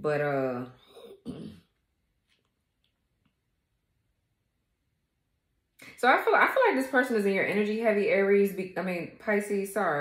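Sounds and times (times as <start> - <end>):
woman clearing her throat: 1.1 - 1.6.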